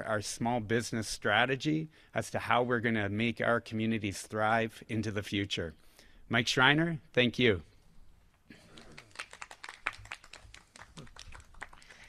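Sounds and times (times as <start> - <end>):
small group clapping: 8.6 - 12.0.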